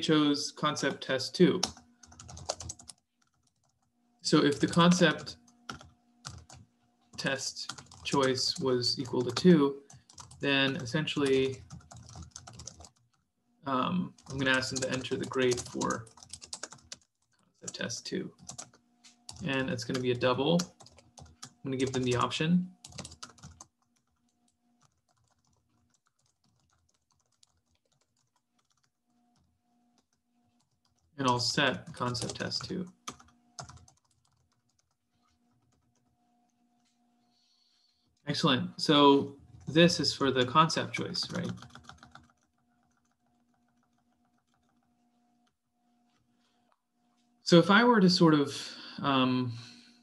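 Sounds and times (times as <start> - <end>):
faint electrical hum: 0.0 - 50.0
computer keyboard clicks: 1.6 - 3.8, 33.1 - 36.1, 41.3 - 45.6
typing on computer keyboard: 1.6 - 3.9, 4.5 - 6.7, 7.6 - 13.2, 14.2 - 36.5, 40.4 - 45.6.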